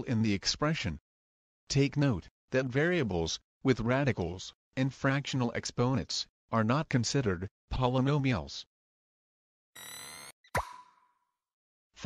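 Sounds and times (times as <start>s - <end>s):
plop with falling pitch: 10.5s - 11.0s.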